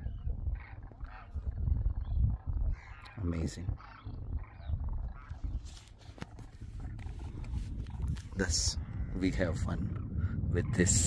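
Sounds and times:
cranes calling: 0.0 - 11.0
steady low rumble: 0.0 - 11.0.

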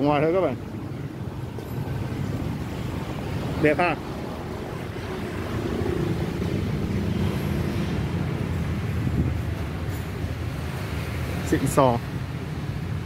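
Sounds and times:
vehicle engine rumbling: 0.0 - 13.0.

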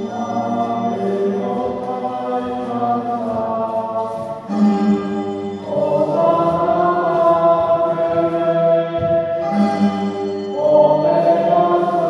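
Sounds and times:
choir singing sustained chords: 5.5 - 12.0.

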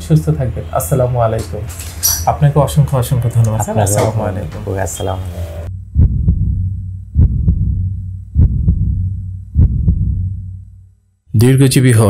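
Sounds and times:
heartbeat thumps: 5.7 - 10.8.

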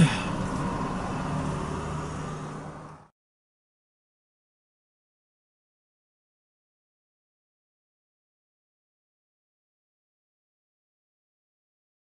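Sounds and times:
car driving on road: 0.0 - 3.1.

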